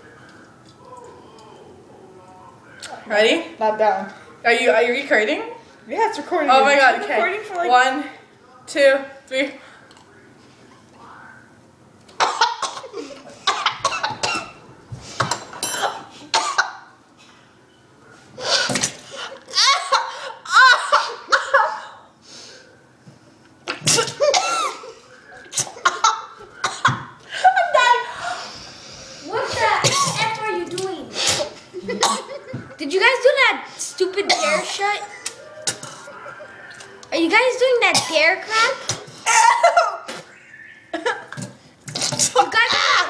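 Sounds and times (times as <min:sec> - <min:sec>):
people coughing and sputtering: 0:12.1 - 0:16.9, 0:18.4 - 0:22.0, 0:23.7 - 0:28.4, 0:29.5 - 0:30.5, 0:31.1 - 0:32.8, 0:34.1 - 0:36.8, 0:37.6 - 0:42.7.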